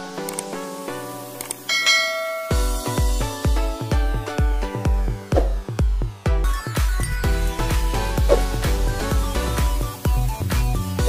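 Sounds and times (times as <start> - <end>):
electronic music with bass beat: 0.0 - 11.0
quick clicks: 0.2 - 0.5, 1.4 - 1.7
notification bell chime: 1.7 - 3.0.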